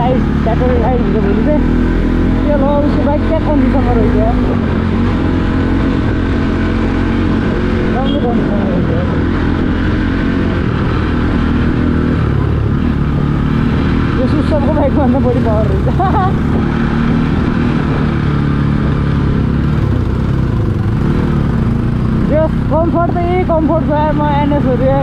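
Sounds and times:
motorcycle engine running: 0.0 - 25.0.

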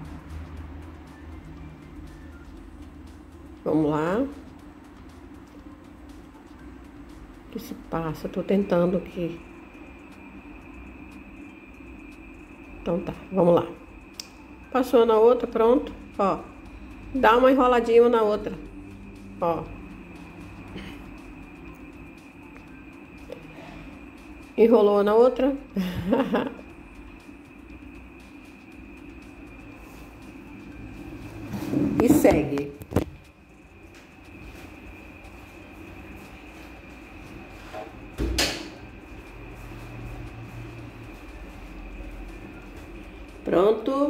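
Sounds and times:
faint high whine: 0.0 - 44.0
low hum: 0.0 - 44.0.

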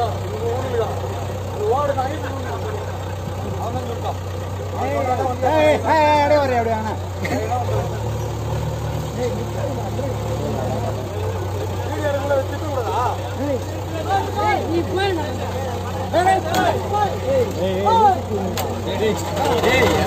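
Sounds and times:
diesel engines idling: 0.0 - 20.0
men talking: 0.0 - 20.0.

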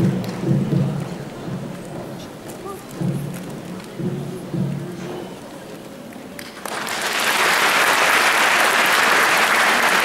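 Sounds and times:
footsteps on wooden stage: 0.0 - 5.8.

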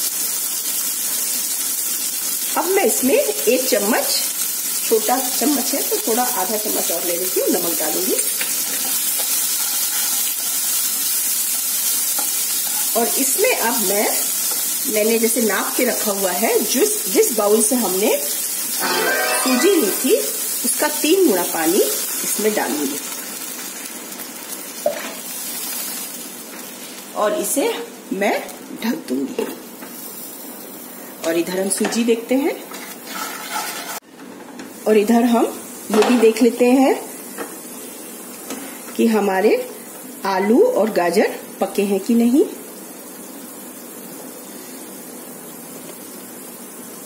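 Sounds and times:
sizzling and hissing in pan: 0.0 - 47.0
water simmering in a pan: 34.9 - 47.0.

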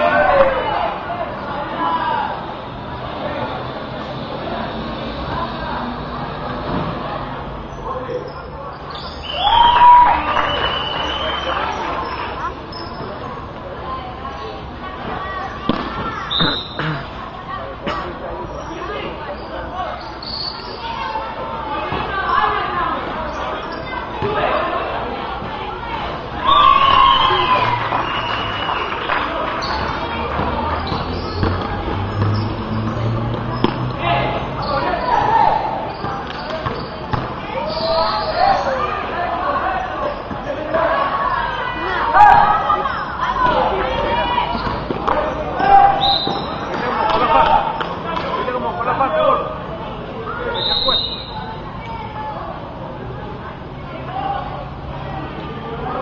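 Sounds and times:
people chattering and calling out: 0.0 - 56.0
high squeal: 18.5 - 21.2, 50.4 - 52.0
basketball bouncing on court: 29.8 - 32.5, 35.9 - 37.4.

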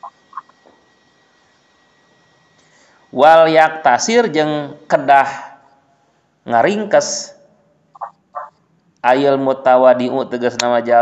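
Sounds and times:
small animal calls: 0.0 - 0.6, 7.9 - 8.6
high-pitched whine: 0.0 - 11.0.

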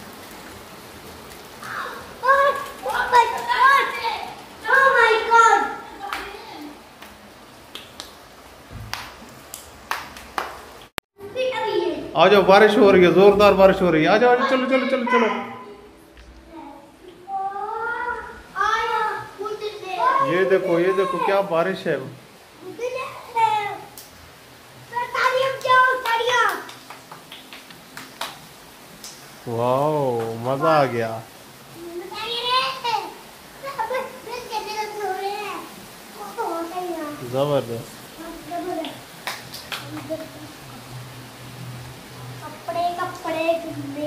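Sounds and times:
rain falling on tiles: 0.0 - 44.0.

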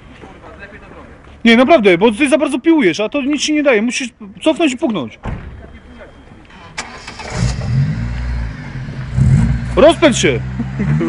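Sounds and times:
car engine revving: 6.8 - 11.0.

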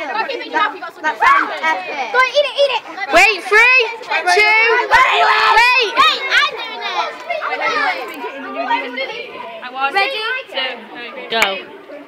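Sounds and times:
girls shouting and chattering: 0.0 - 12.0.

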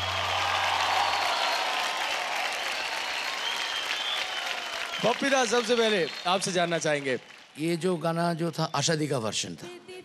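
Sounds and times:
audience applauding: 0.0 - 8.2.

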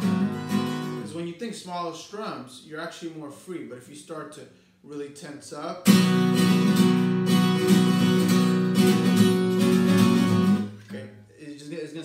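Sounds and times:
acoustic guitar strummed hard: 0.0 - 1.1, 5.8 - 11.0.

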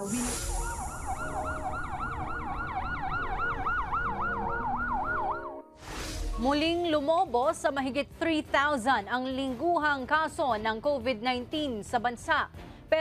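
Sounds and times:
siren yelp: 0.1 - 5.7.

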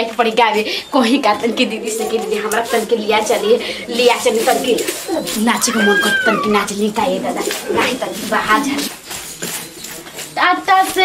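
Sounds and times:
women talking: 0.0 - 9.0, 10.4 - 11.0
cat meowing: 5.5 - 6.7.

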